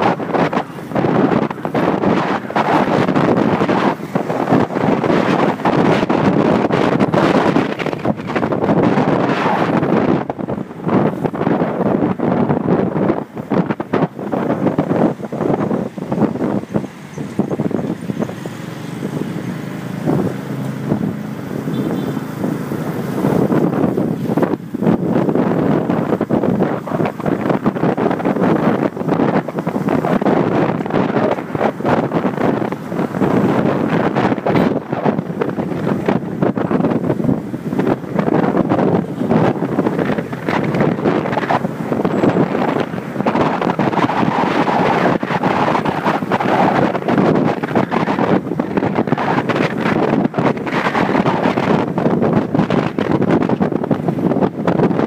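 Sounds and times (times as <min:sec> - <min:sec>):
motorcycle running: 0:00.0 - 0:55.0
road traffic: 0:00.0 - 0:55.0
wind buffeting microphone: 0:00.0 - 0:55.0.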